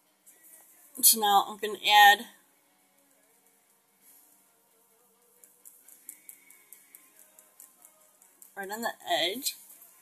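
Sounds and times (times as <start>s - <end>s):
faint background music: 0.0s - 10.0s
stylus tapping on drawing tablet: 5.3s - 9.1s.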